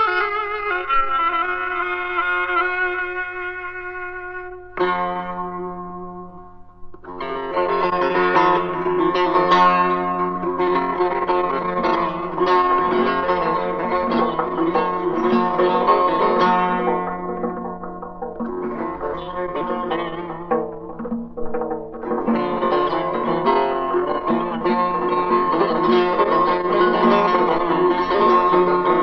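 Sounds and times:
plucked lute melody: 0.0 - 29.0.

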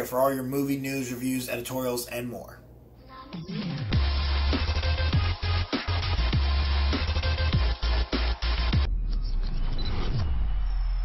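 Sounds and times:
deep bass drone: 3.9 - 11.0.

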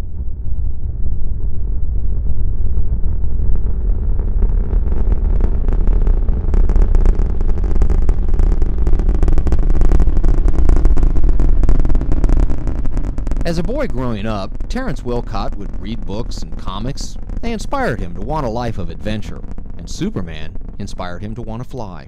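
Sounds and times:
deep rocket rumble: 0.0 - 22.0
harsh rocket crackle: 0.0 - 22.0.

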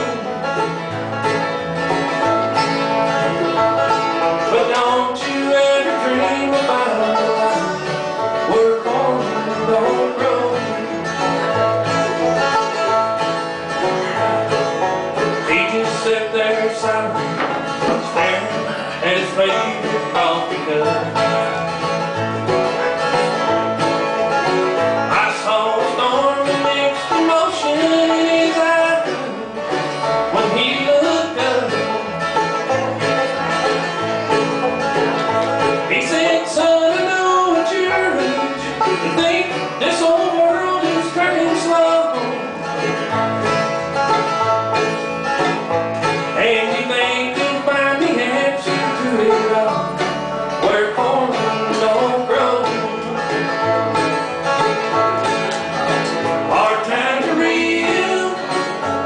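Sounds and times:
bluegrass band playing: 0.0 - 59.0.

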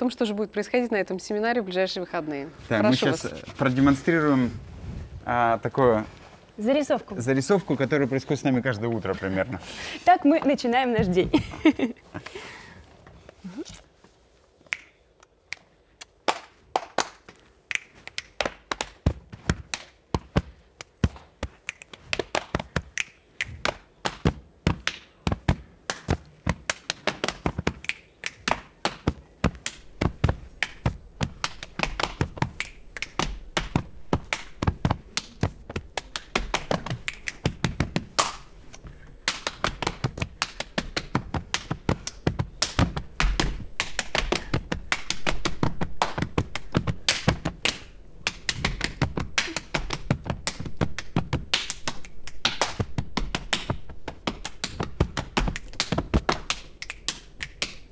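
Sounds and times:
hand claps: 14.7 - 38.5, 39.2 - 57.9
hands slapping body: 15.5 - 57.9.

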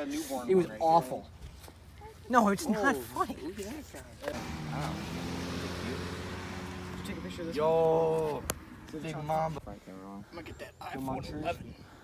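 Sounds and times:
motor vehicle running: 4.2 - 9.6.

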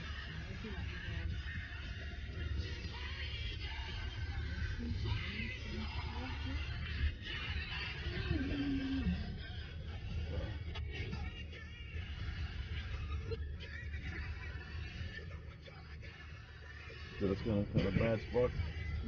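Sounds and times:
faint voice: 0.0 - 11.3
faint music: 0.0 - 19.0
car cabin low rumble: 17.3 - 18.8.

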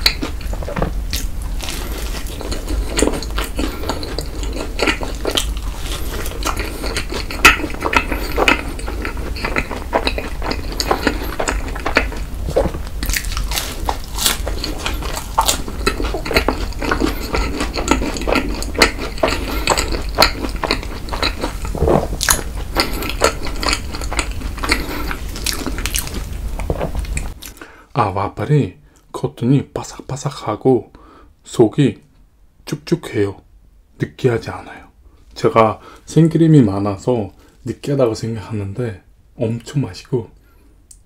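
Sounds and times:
chewing crisp waffle: 0.0 - 27.6.

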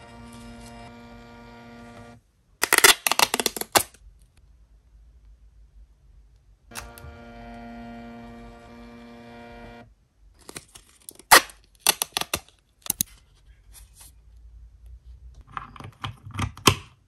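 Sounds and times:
printer motor whine: 0.0 - 2.2, 6.7 - 9.9
paper snapping and crackling: 2.6 - 4.0, 10.5 - 13.0.

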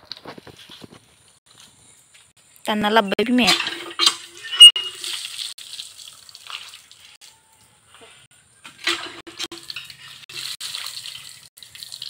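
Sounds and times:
water splashing: 3.4 - 7.2, 8.8 - 12.0
short sharp squeak: 4.0 - 5.1.

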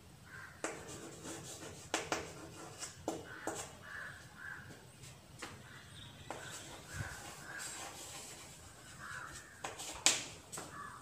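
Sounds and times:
chalk scratching on chalkboard: 0.6 - 3.8, 6.3 - 10.7
chalk tapping on chalkboard: 0.6 - 3.8, 6.3 - 10.8.

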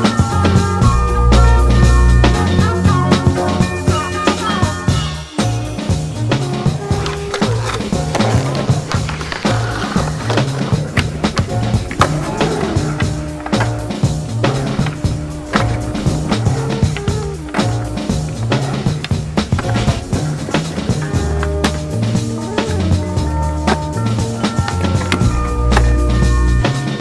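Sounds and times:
background music with bass line: 0.0 - 27.0
skateboard wheels rolling on concrete: 0.0 - 27.0
skateboard clacks: 6.0 - 27.0.

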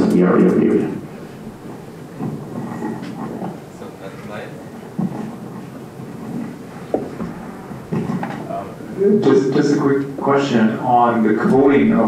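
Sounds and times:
microphone handling rumble: 4.6 - 10.0
microphone bump: 6.8 - 8.5.

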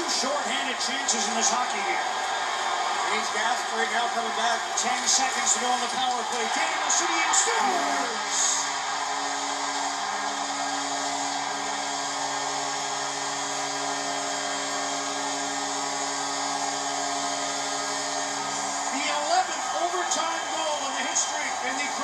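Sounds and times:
crowd cheering: 0.0 - 22.0.

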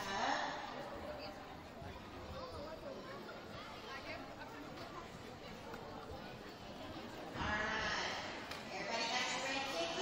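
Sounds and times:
murmur of an audience: 0.0 - 10.0.

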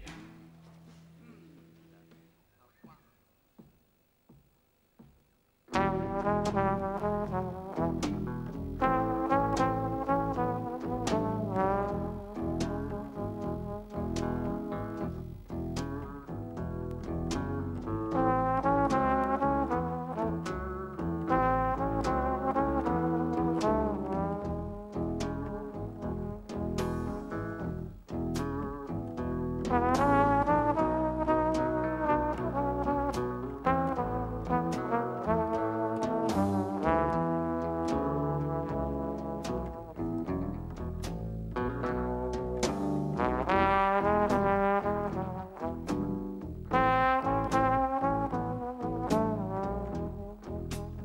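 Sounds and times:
drums beat: 2.8 - 51.0
double bass: 5.7 - 51.0
guitar: 5.7 - 51.0
trombone melody: 5.7 - 51.0.

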